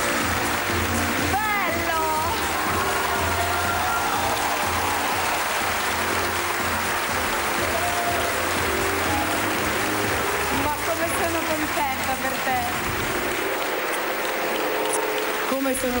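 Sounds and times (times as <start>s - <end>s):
audience applauding: 0.0s - 16.0s
entrance music: 0.0s - 16.0s.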